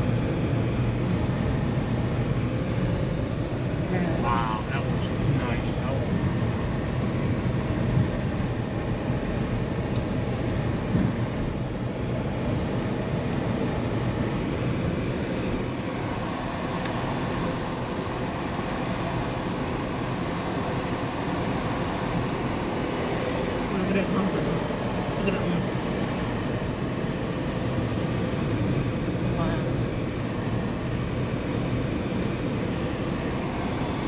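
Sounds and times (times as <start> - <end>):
car road and engine noise: 0.0 - 34.0.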